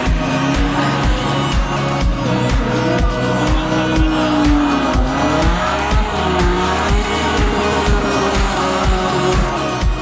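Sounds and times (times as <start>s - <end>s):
car engines revving: 0.0s - 10.0s
dance music with steady beat: 0.0s - 10.0s.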